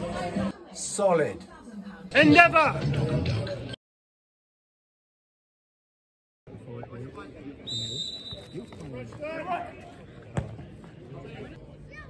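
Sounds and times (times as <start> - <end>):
football kick thud: 10.3 - 10.8.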